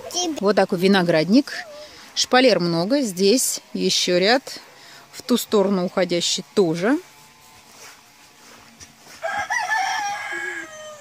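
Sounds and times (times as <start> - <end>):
rooster crowing: 9.1 - 11.0.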